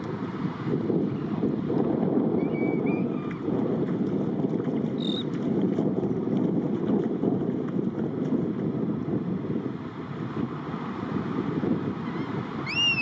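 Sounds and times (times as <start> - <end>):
wind on the microphone: 0.0 - 13.0
high clear bird call: 12.6 - 13.0.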